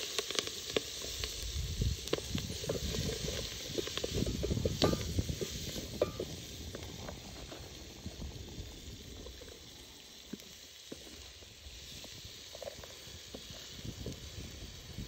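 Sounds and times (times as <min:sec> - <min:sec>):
sizzling and rustling greens: 0:00.0 - 0:15.0.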